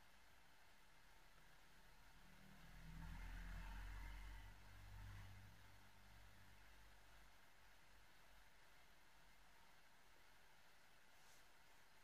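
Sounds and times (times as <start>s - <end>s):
faint low rumble: 0.0s - 12.0s.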